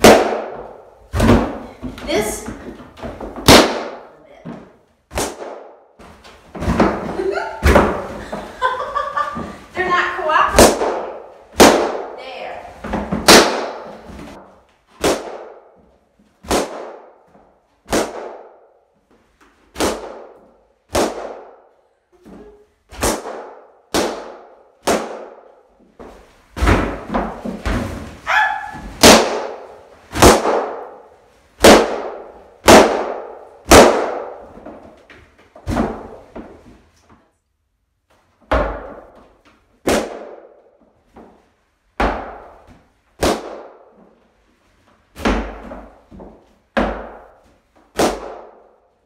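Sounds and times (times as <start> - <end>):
balloons popping: 0.0 - 37.0, 38.4 - 44.3, 45.1 - 49.0.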